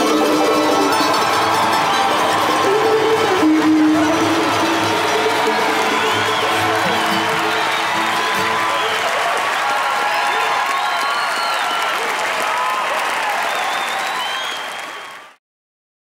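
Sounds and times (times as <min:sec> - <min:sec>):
audience applauding and cheering: 0:00.0 - 0:15.4
shouts and whistles: 0:00.0 - 0:15.4.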